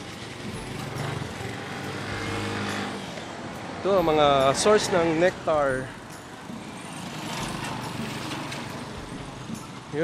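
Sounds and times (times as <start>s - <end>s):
street noise: 0.0s - 10.0s
vehicle engine running: 0.0s - 10.0s.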